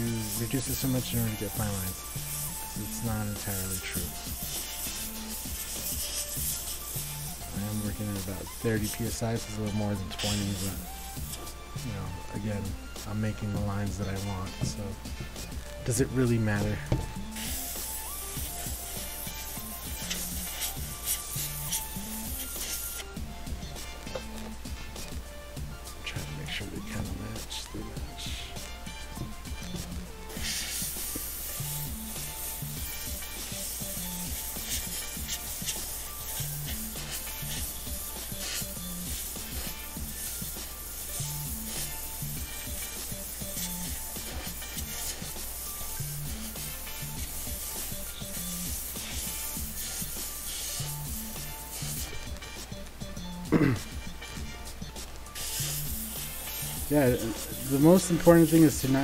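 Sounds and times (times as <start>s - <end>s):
airbrush spraying hiss: 0.0s - 53.3s, 54.1s - 59.0s
background music with bass beat: 0.0s - 59.0s.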